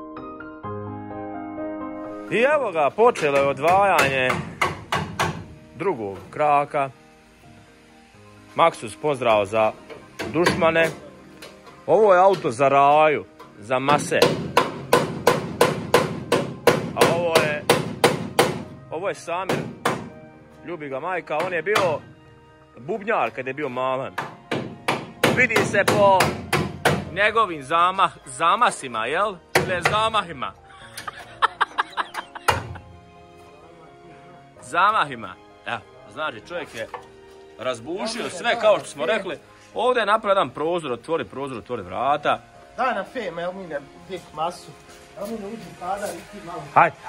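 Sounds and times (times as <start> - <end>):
background music: 0.0 - 47.0
hammer striking sheet metal: 3.1 - 5.5, 13.9 - 18.8, 19.5 - 20.2, 24.2 - 27.1.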